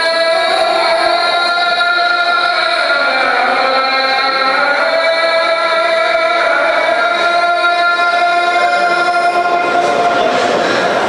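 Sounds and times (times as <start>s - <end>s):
person chanting long note: 0.0s - 11.0s.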